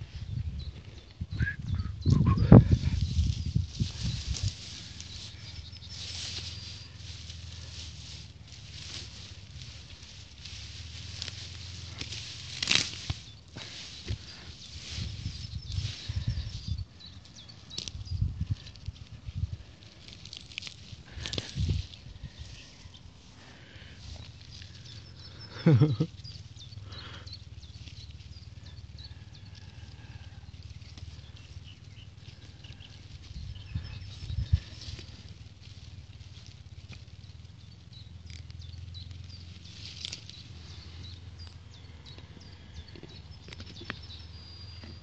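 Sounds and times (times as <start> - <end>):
rumbling wind on microphone: 0.0 - 35.8
grass rustling under hand: 0.0 - 45.0.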